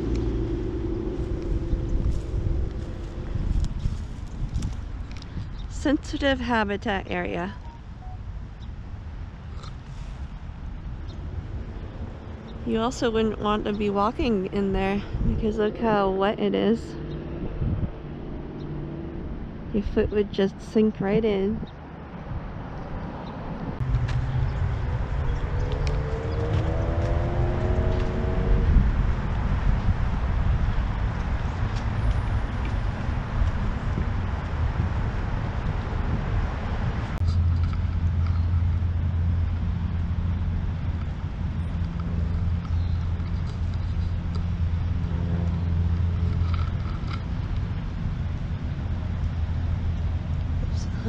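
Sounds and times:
engine tone rising: 0:00.0 - 0:05.5, 0:10.6 - 0:19.8, 0:21.7 - 0:51.0
road traffic rumble: 0:00.0 - 0:51.0
steady low hum: 0:00.0 - 0:51.0.

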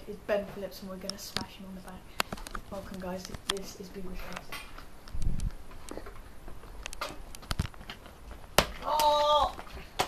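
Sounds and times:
person crying out: 0:08.8 - 0:09.6.

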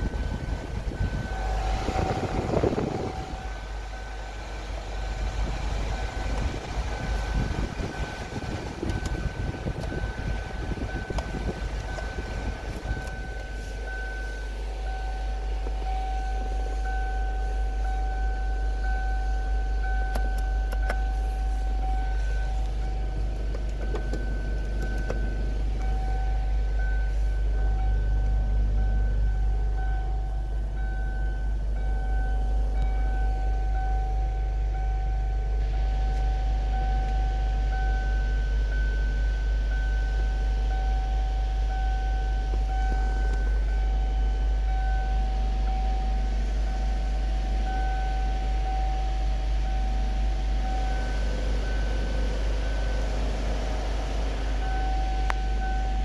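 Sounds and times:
high thin whine: 0:00.0 - 0:31.5, 0:40.8 - 0:56.0
car engine idling: 0:00.0 - 0:56.0.

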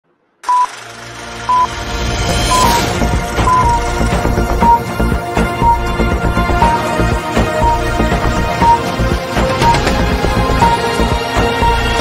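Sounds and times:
short high beeps: 0:02.5 - 0:03.8.

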